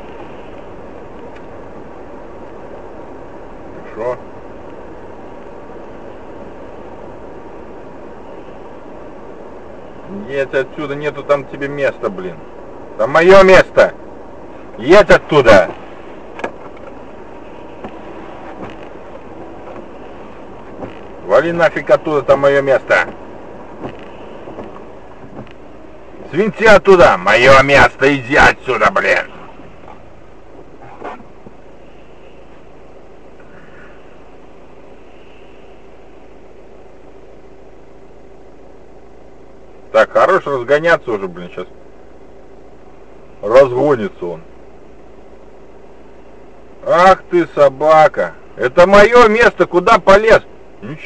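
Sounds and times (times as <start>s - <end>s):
car road and engine noise: 0.0s - 51.0s
faint steady hum: 0.0s - 51.0s.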